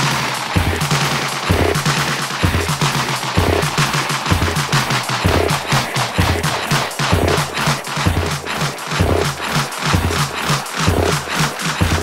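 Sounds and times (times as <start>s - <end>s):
rapid rattling percussion: 0.0s - 12.0s.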